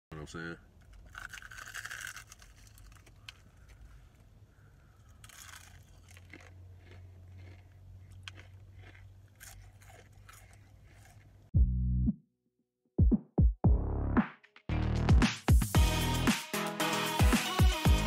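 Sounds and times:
fried chicken crunching: 0:00.9 - 0:11.5
intro music: 0:13.0 - 0:18.0.

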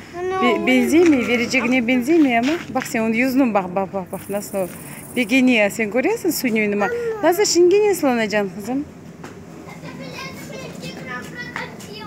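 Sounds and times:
young children chattering: 0:00.0 - 0:02.2, 0:06.6 - 0:07.6, 0:09.6 - 0:12.0.

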